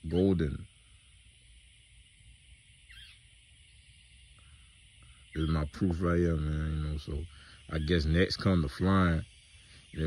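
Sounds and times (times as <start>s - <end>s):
steady high hiss: 0.0s - 10.0s
faint falling chirp: 2.8s - 5.8s.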